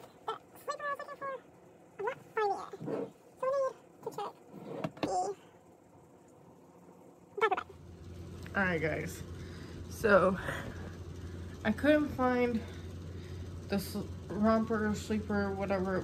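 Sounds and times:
high-pitched vocal sounds: 0.0 - 4.4, 7.4 - 7.8.

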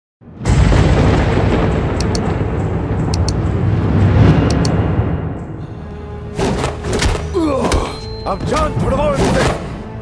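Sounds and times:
deep cinematic rumble: 0.2 - 6.4.

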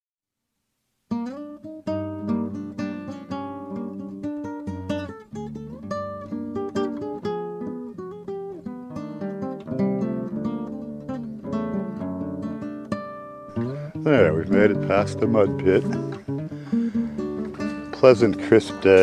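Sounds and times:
acoustic guitar plucking and strumming: 1.1 - 19.0.

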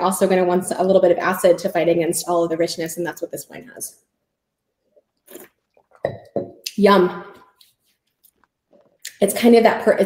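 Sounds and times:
soft mouth tasting sound: 4.8 - 6.1.

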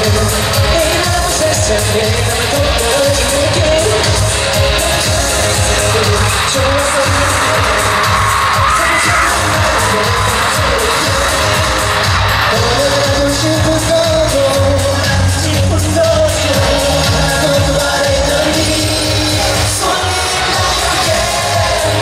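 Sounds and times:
live pop music: 0.0 - 22.0
person singing: 0.0 - 22.0
crowd cheering: 2.8 - 22.0.

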